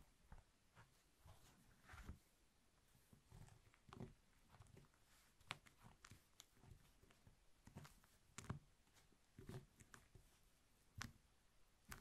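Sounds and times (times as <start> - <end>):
fingers rubbing wax sheet: 2.9 - 12.0.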